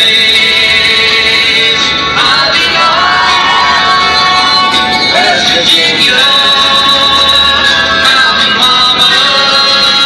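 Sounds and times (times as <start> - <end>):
person singing with instruments: 0.0 - 10.0.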